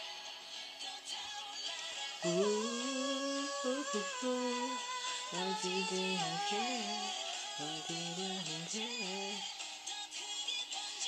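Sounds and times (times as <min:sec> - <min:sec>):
woman singing softly: 0:00.9 - 0:11.0.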